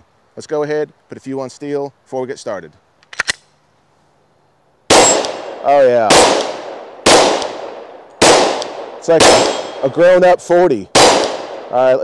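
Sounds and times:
loud pistol shot: 4.9 - 10.0, 10.9 - 11.9.

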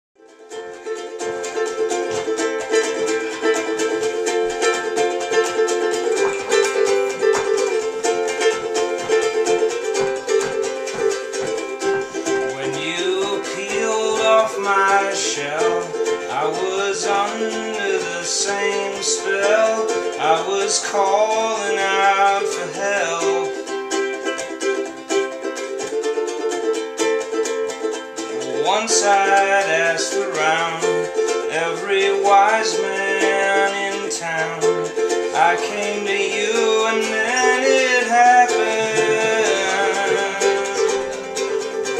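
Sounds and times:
ukulele strumming: 0.2 - 41.9
man singing: 11.4 - 24.4, 28.3 - 41.9.

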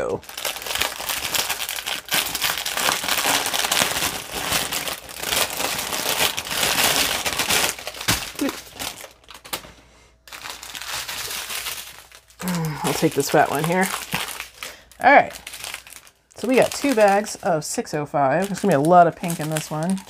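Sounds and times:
plastic bags crinkling: 0.0 - 20.0.

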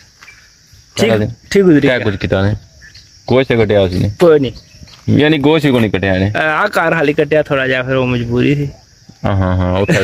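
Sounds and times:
insects chirring: 0.0 - 10.0
man talking: 1.0 - 2.7, 3.3 - 10.0.

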